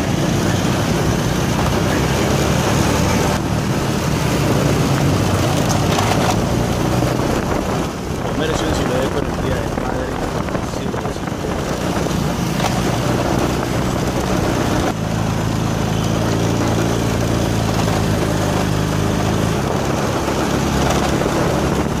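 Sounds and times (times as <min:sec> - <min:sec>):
road and wind noise: 0:00.0 - 0:22.0
vehicle engine running: 0:00.0 - 0:22.0.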